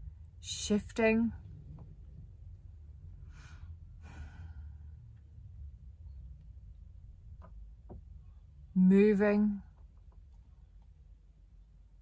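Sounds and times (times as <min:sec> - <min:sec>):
steady low hum: 0:00.0 - 0:12.0
woman breathing in a sigh: 0:03.2 - 0:04.9.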